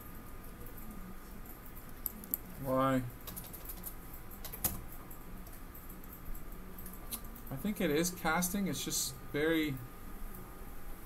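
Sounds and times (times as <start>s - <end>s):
keyboard and mouse clicks: 3.2s - 7.4s.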